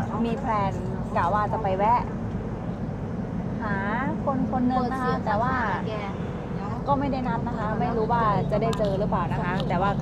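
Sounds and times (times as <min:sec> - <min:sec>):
woman speaking: 0:00.0 - 0:02.1, 0:03.6 - 0:10.0
van engine and road noise: 0:00.0 - 0:10.0.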